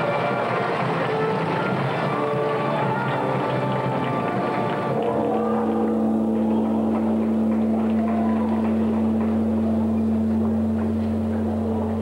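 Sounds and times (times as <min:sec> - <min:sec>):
faint arena crowd noise: 0:00.0 - 0:12.0
steady low hum: 0:00.0 - 0:12.0.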